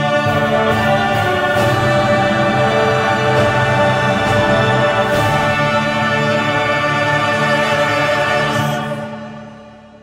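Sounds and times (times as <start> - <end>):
choir with instrumental backing: 0.0 - 10.0.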